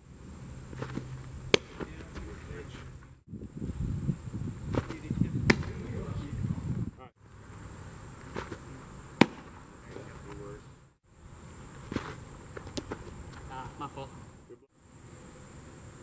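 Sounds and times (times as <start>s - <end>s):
baseball smacking into catcher's mitt: 0.8s - 2.3s, 4.7s - 5.9s, 8.3s - 9.6s, 11.9s - 13.1s.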